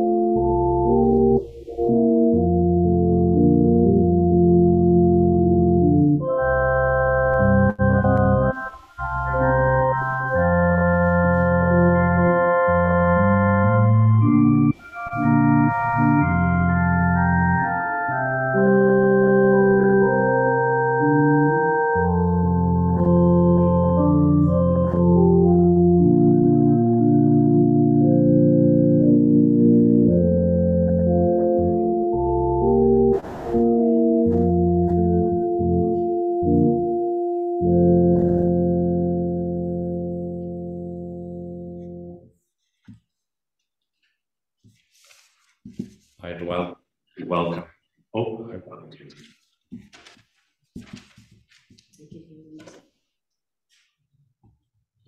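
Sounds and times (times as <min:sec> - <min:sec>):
church organ playing chords: 0:00.0 - 0:42.3.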